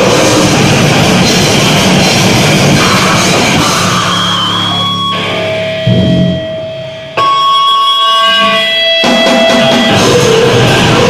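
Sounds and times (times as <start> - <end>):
electric guitar feedback: 0.0 - 11.0
loud low hit: 5.6 - 7.2.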